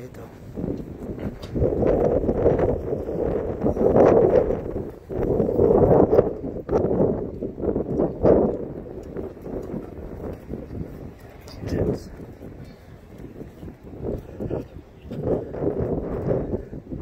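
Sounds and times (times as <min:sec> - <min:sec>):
wind on phone microphone: 0:00.0 - 0:17.0
microphone handling noise: 0:00.4 - 0:17.0
footsteps on pavement: 0:07.2 - 0:15.4.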